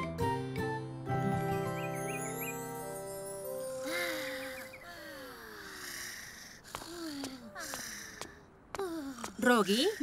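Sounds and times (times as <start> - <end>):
cartoon music chord with chirps: 1.1 - 4.8.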